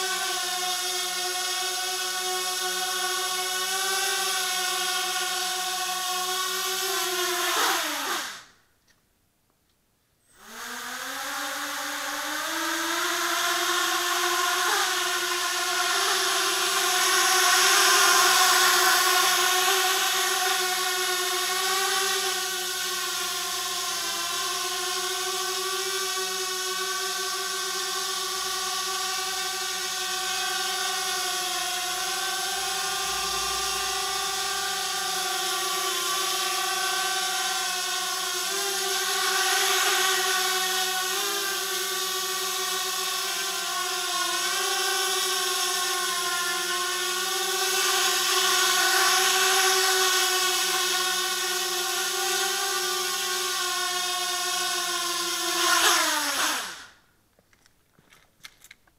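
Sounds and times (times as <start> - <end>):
quadcopter motors whining: 0.0 - 8.6, 10.3 - 57.1.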